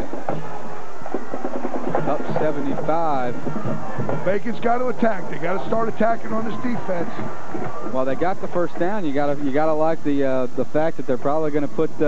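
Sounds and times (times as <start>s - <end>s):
band music in stadium: 0.0s - 12.0s
drums: 0.0s - 12.0s.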